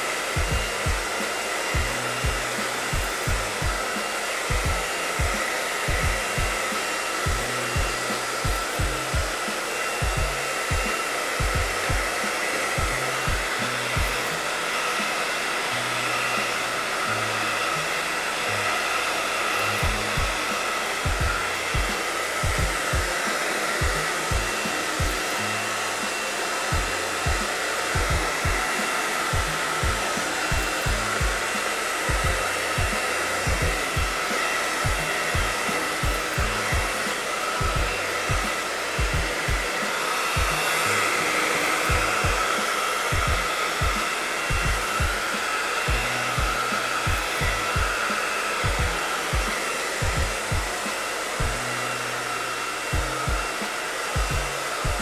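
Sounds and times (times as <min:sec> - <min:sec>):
hair dryer blowing: 0:00.0 - 0:55.0
low thumping beat: 0:00.1 - 0:52.0, 0:52.8 - 0:55.0.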